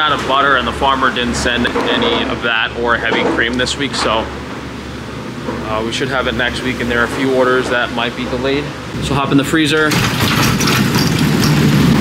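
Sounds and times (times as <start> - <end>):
refrigeration fans running: 0.0 - 12.0.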